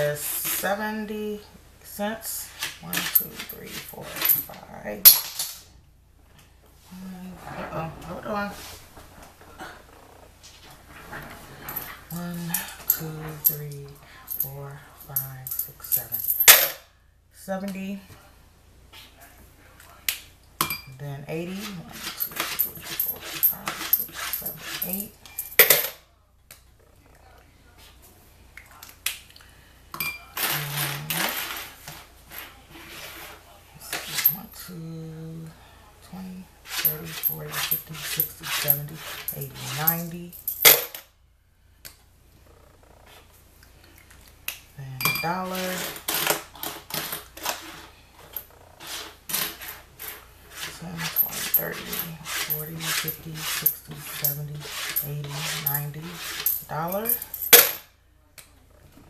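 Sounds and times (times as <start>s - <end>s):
coins clinking on tabletop: 15.1s - 16.8s, 21.6s - 26.0s, 36.7s - 41.0s, 49.3s - 57.9s
coins clicking on tabletop: 22.2s - 26.0s.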